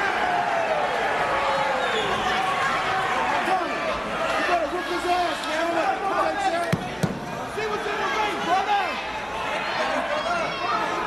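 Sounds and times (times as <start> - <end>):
people yelling: 0.0 - 11.0.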